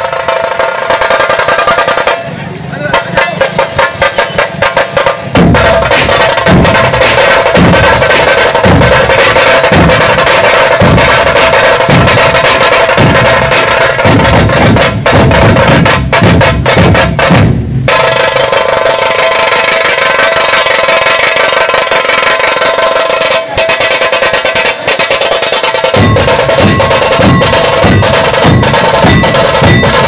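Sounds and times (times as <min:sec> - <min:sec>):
deep barrel drum beats: 0:00.0 - 0:30.0
dense drum rattle: 0:00.0 - 0:30.0.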